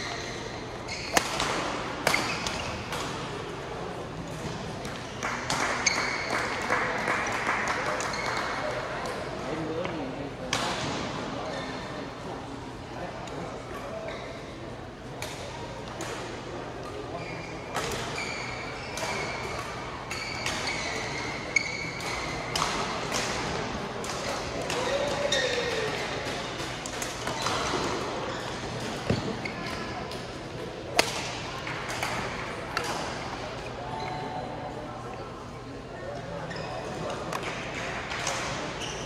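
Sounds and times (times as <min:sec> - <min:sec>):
shoes squeaking on court: 0:00.0 - 0:01.4, 0:20.2 - 0:22.5, 0:36.4 - 0:37.1
voices murmuring in echoing hall: 0:00.0 - 0:39.0
rackets striking shuttlecock: 0:01.1 - 0:03.2.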